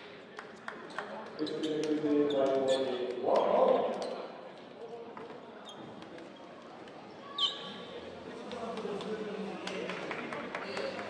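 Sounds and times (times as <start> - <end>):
brief high squeak: 7.3 - 7.8.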